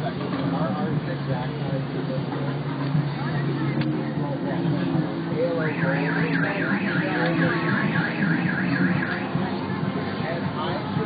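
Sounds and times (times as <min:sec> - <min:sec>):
electronic siren warbling: 0:05.6 - 0:09.3.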